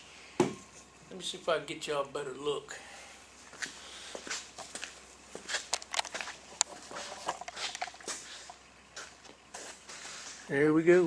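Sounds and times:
camera handling clicks and rustles: 0:05.7 - 0:08.2.

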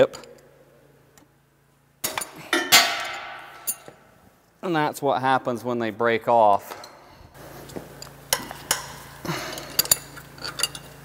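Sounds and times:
steel wrenches clinking: 0:02.0 - 0:04.0, 0:09.5 - 0:11.0.

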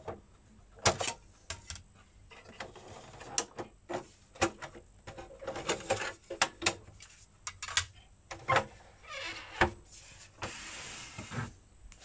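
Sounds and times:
sliding rub on plastic: 0:09.9 - 0:11.6.

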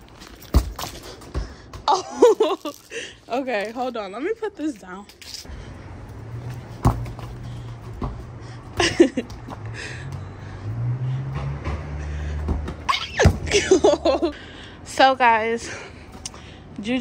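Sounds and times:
ball kicked on concrete: 0:00.1 - 0:02.4, 0:06.5 - 0:09.6, 0:12.4 - 0:13.7.

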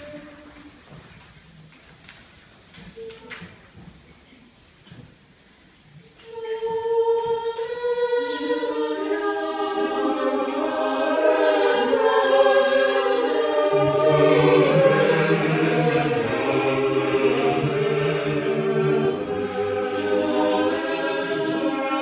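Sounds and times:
choir singing unaccompanied: 0:06.2 - 0:22.0.

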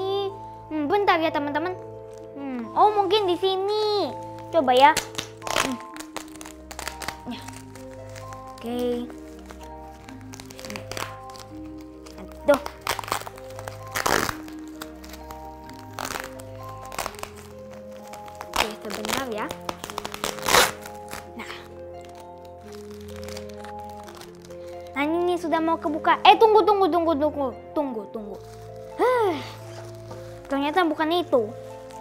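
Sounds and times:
bubble wrap crinkling: 0:00.0 - 0:26.6, 0:28.1 - 0:32.0
slow background music: 0:00.0 - 0:32.0.

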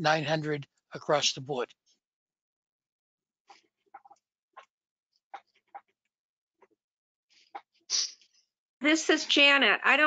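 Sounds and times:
woman speaking: 0:08.8 - 0:10.0.

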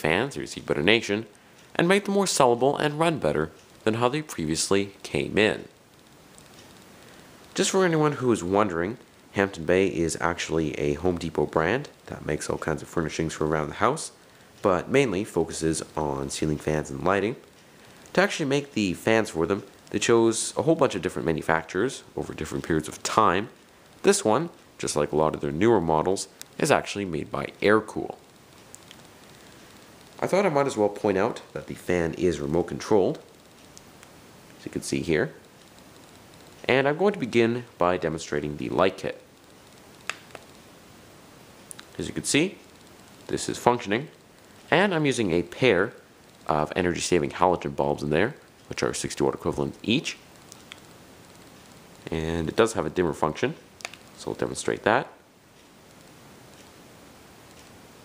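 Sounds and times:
light hiss: 0:00.0 - 0:58.0.

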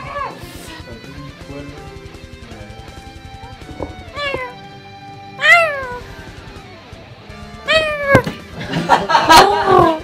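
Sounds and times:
background music with steady beat: 0:00.0 - 0:10.0
cat meowing: 0:04.1 - 0:04.6, 0:05.4 - 0:06.1, 0:07.7 - 0:08.4.

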